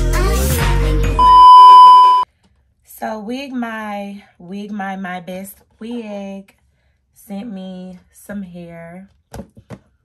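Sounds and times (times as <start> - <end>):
music: 0.0 - 1.4
high-pitched electronic beep: 1.2 - 2.2.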